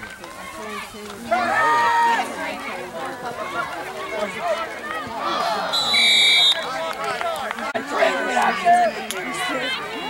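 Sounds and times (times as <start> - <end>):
spectators' voices and shouts: 0.0 - 10.0
referee's whistle blast: 5.7 - 6.7.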